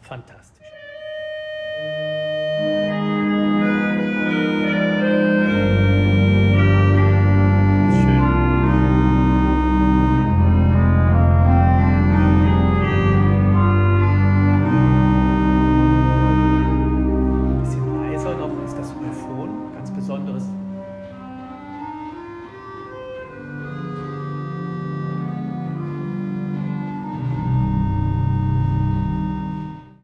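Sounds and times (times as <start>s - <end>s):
pipe organ playing held chords: 0.7s - 30.0s
deep organ pedal bass: 0.8s - 30.0s.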